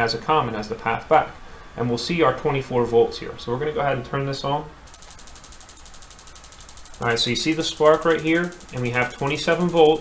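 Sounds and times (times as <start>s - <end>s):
spark igniter clicking: 4.9s - 10.0s.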